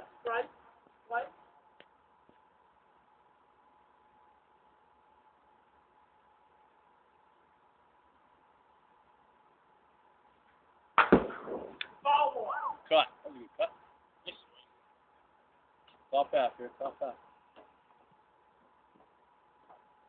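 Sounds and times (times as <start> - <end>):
faint steady hum: 0.0 - 20.0
baseball bat hitting ball: 11.0 - 12.0.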